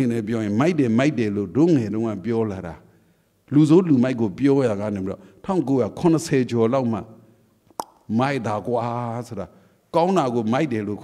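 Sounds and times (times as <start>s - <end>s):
man speaking into a microphone: 0.0s - 2.9s, 3.5s - 7.3s, 8.0s - 11.0s.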